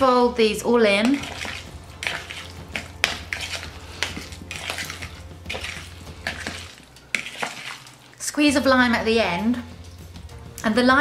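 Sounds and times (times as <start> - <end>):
fork scraping a bowl: 1.0 - 8.0.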